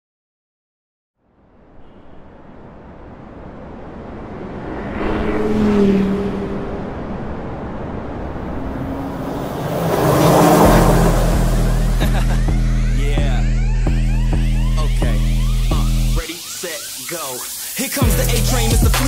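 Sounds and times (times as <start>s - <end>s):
rush of noise: 1.4s - 19.0s
car engine speeding past: 3.0s - 12.8s
deep bass note of music: 10.6s - 16.1s.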